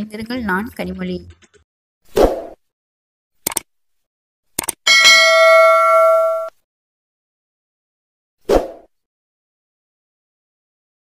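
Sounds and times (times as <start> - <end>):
mouse clicks: 3.4 - 3.7, 4.6 - 4.8
bright bell ding: 4.9 - 6.5.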